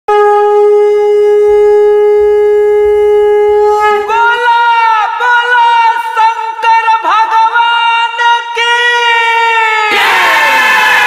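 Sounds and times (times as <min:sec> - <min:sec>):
conch shell blown: 0:00.1 - 0:04.9.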